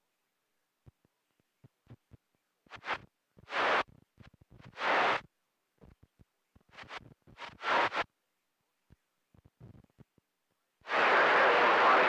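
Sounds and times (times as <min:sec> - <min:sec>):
radio static hiss bursts: 0:02.7 - 0:03.9, 0:04.7 - 0:05.3, 0:06.7 - 0:08.1, 0:10.8 - 0:12.0.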